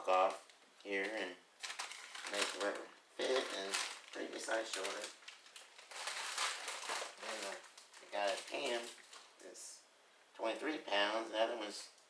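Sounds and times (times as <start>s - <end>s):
plastic packages rustling and crinkling: 0.1s - 9.4s.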